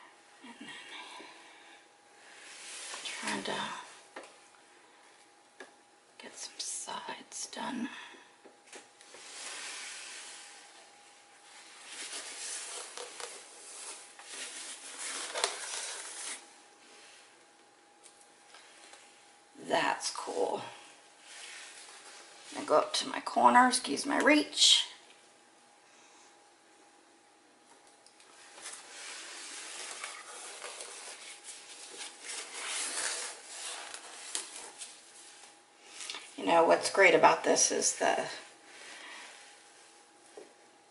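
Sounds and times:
hands rubbing and rustling: 8.7s - 17.2s, 28.3s - 36.3s.

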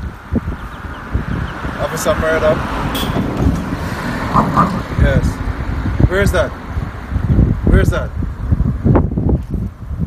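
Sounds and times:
man's low voice: 1.7s - 6.7s, 7.5s - 8.3s
low outdoor rumble: 1.9s - 7.7s.

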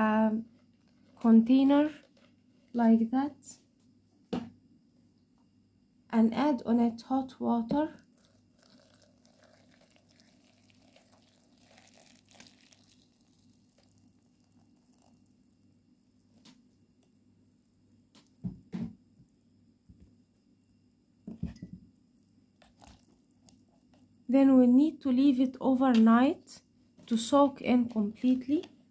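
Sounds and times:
water pouring into container: 8.0s - 15.6s, 22.6s - 23.6s.

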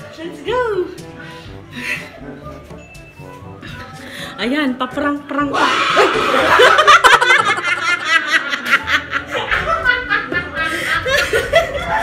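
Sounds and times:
woman laughing hard: 5.6s - 12.0s.

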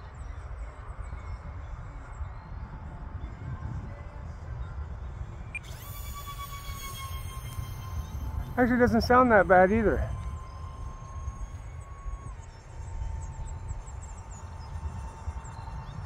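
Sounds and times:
electric ducted fans whining: 0.0s - 16.0s
wind rumbling on microphone: 0.0s - 16.0s.

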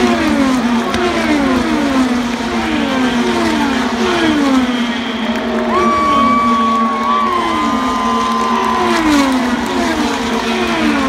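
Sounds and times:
race cars passing by: 0.0s - 11.0s
steady engine hum: 0.0s - 11.0s.

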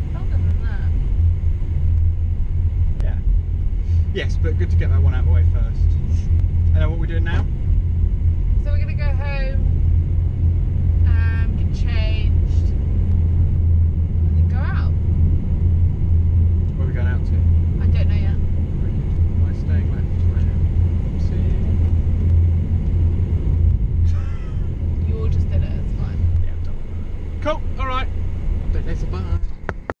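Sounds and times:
people talking: 0.0s - 1.0s, 4.2s - 7.5s, 8.6s - 9.6s, 11.1s - 12.7s, 14.4s - 14.9s, 16.8s - 20.6s, 21.2s - 21.8s, 24.1s - 26.8s, 27.4s - 28.1s, 28.8s - 29.5s
car driving rumble from inside: 0.0s - 30.0s.

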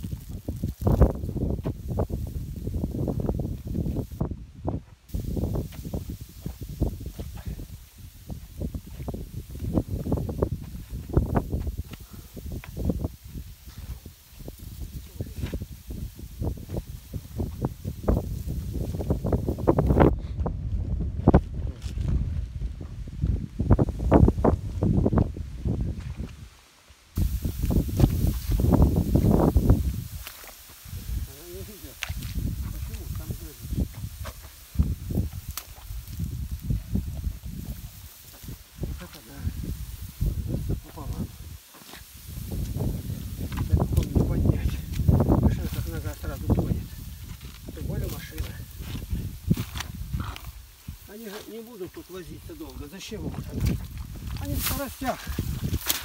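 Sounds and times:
rustling in dry grass: 0.0s - 4.4s, 5.0s - 20.1s, 21.4s - 56.0s
wind rumbling on microphone: 0.0s - 56.0s.

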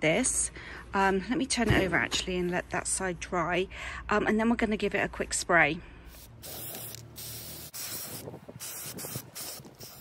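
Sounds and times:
spray paint can hissing: 6.1s - 10.0s.

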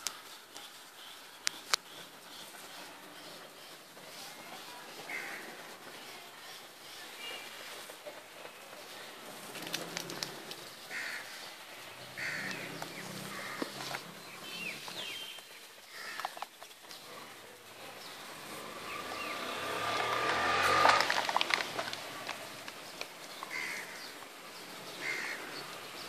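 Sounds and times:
birds chirping: 0.0s - 26.0s
rustling: 0.0s - 26.0s.

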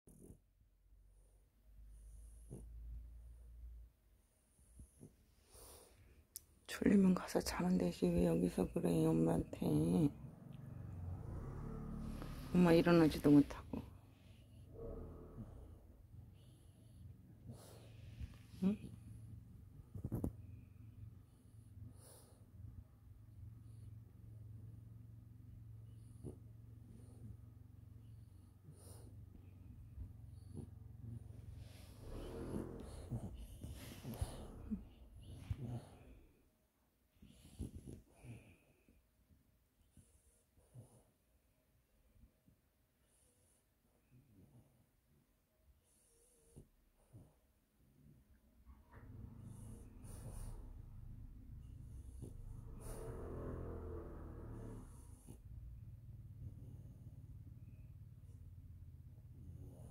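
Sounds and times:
dog snuffles: 28.1s - 29.4s, 30.1s - 36.4s, 37.2s - 38.7s, 48.9s - 51.2s, 51.8s - 55.6s.

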